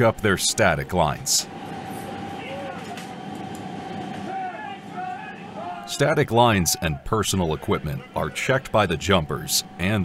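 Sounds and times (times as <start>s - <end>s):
mid-pitched hum: 0.0s - 10.0s
faint voices calling out: 4.2s - 9.8s.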